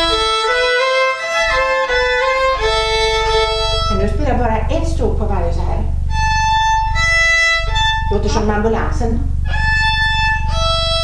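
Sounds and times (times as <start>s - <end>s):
violin harmonic notes: 0.0s - 11.0s.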